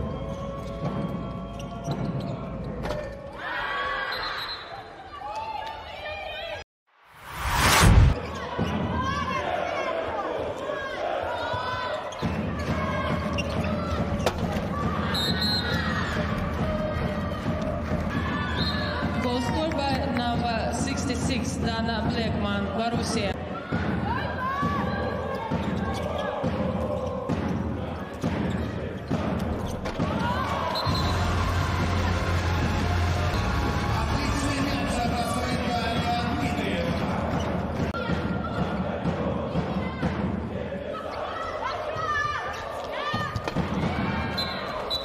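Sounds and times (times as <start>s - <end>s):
transition swoosh: 6.9s - 8.3s.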